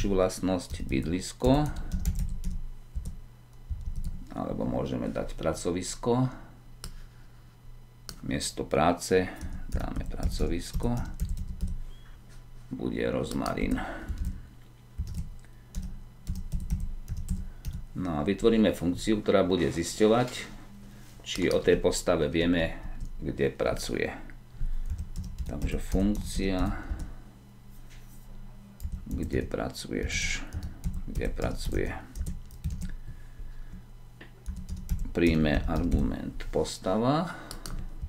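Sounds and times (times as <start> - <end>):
computer keyboard typing: 0.6 - 4.3, 9.4 - 11.8, 13.3 - 14.4, 15.0 - 17.8, 21.4 - 21.8, 22.8 - 23.2, 24.8 - 27.1, 28.8 - 29.5, 30.4 - 33.1, 34.4 - 36.1, 37.5 - 38.0.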